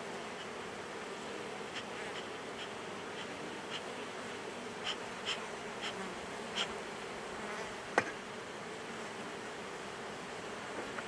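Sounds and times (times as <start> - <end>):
honey bees humming: 0.0 - 11.0
bee smoker bellows puffs: 1.5 - 8.2.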